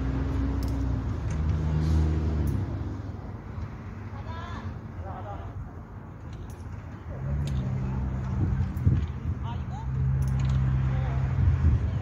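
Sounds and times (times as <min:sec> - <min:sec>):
low engine hum: 0:00.0 - 0:04.2.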